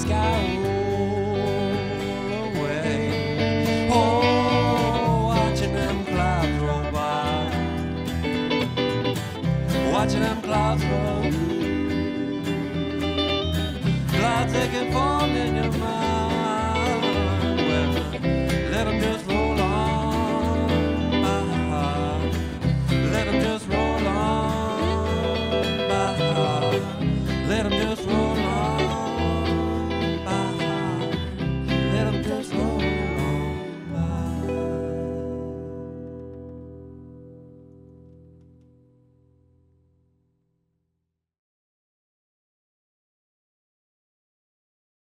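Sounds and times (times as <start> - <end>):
country-folk band playing: 0.0 - 36.7
sliding lead melody: 0.0 - 38.4
bass and guitar chord ringing: 0.0 - 40.0.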